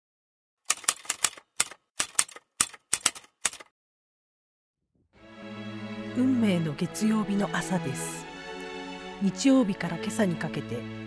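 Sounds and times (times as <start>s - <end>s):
typewriter keystroke clicks: 0.7s - 3.7s.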